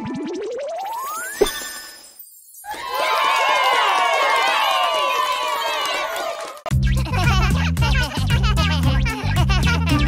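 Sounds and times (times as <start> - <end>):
children cheering and shouting: 2.7 - 6.6.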